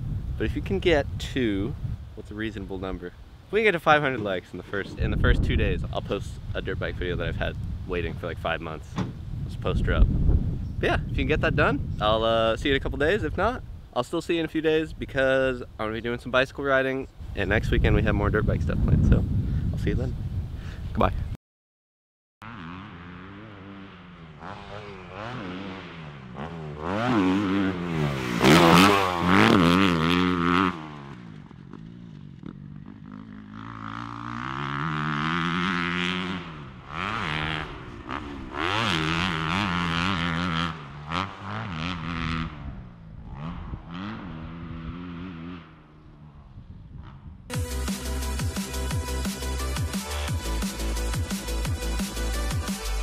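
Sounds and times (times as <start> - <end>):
motocross bike engine revving: 22.4 - 53.0.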